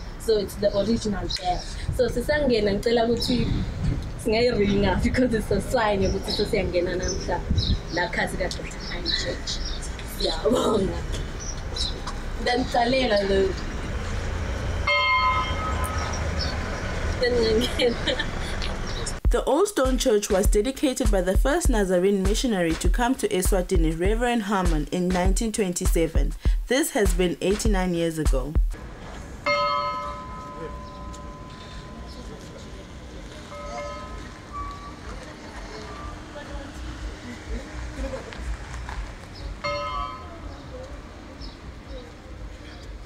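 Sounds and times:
small church bell ringing: 14.8s - 16.2s, 29.5s - 35.2s, 39.6s - 40.5s.

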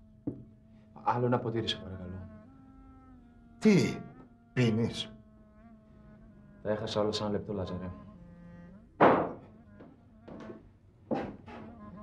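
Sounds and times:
glass set down on table: 9.0s - 9.5s.

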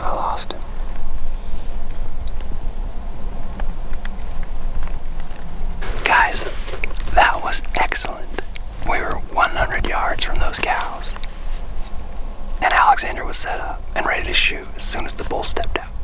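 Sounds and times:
man whispering: 0.0s - 0.7s, 5.8s - 11.2s, 12.6s - 16.0s.

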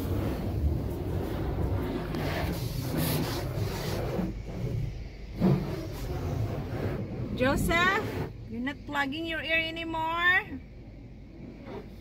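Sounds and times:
muffled water spray on car: 0.0s - 12.0s.

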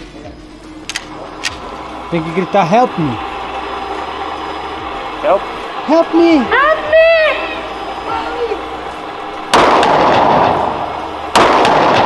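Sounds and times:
pistol shot with echo: 9.5s - 12.0s.

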